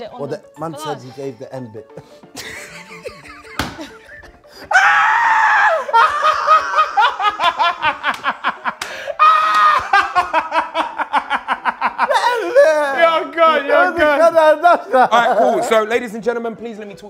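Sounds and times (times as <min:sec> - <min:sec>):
group of people laughing: 0:02.4 - 0:04.5, 0:05.7 - 0:13.0, 0:14.6 - 0:15.8
shrieks of laughter: 0:04.7 - 0:13.0.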